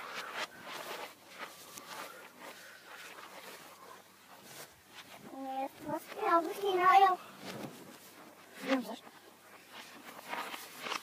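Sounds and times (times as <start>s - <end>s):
reversed rustling and handling: 0.0s - 11.0s.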